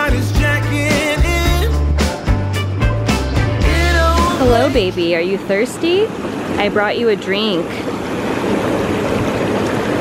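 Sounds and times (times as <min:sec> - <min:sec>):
hot tub air bubble jets: 0:04.3 - 0:10.0.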